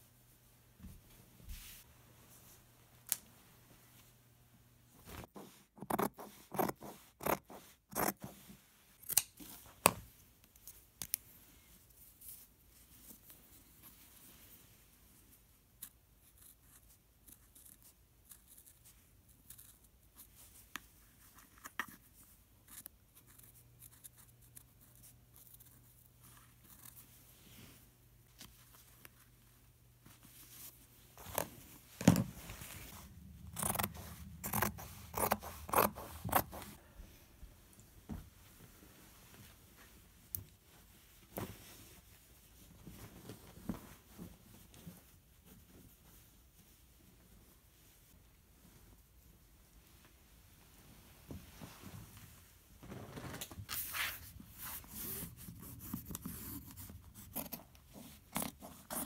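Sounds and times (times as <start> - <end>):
scissors snipping canvas: 33.4 - 36.8.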